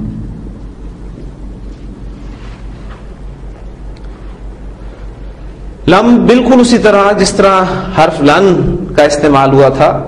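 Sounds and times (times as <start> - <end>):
background hiss: 0.0 - 10.0
steady low hum: 0.0 - 10.0.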